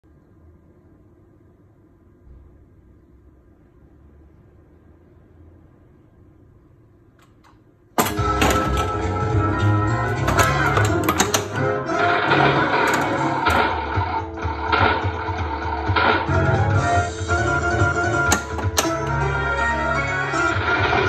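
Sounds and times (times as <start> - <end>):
pinball game music and effects: 8.0 - 21.0.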